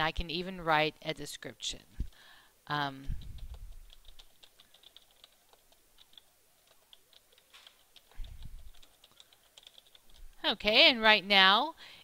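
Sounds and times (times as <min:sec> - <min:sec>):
computer keyboard typing: 0:03.1 - 0:10.5.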